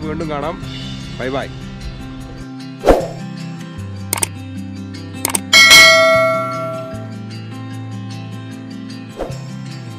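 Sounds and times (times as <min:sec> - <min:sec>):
background music: 0:00.0 - 0:09.9
quick double click: 0:05.2 - 0:05.5
bright bell ding: 0:05.4 - 0:07.2.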